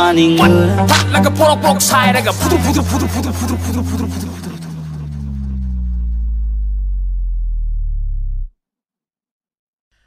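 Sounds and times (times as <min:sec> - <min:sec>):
low droning hum: 0:02.0 - 0:08.5.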